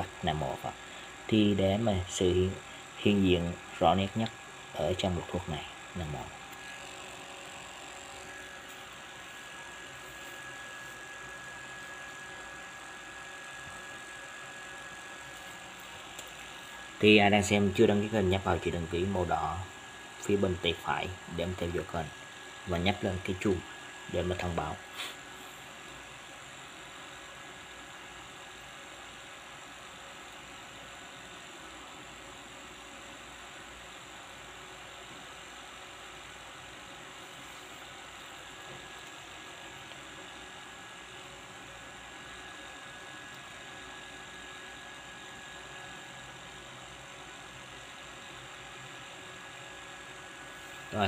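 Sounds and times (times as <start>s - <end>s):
background hum and hiss: 0.0s - 51.0s.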